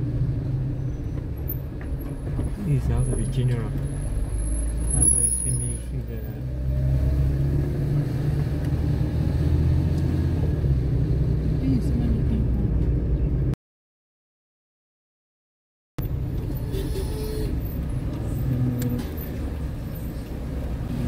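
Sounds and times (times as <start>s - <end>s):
car engine and tyres rumbling: 0.0s - 13.6s, 16.0s - 21.0s.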